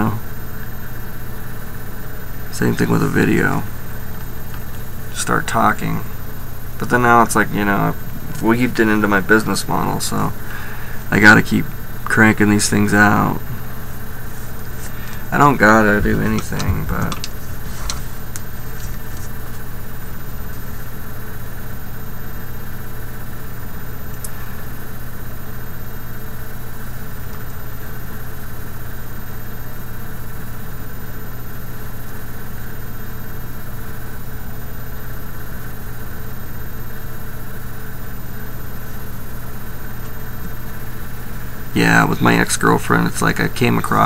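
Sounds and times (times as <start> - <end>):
low hum: 0.0 - 29.4.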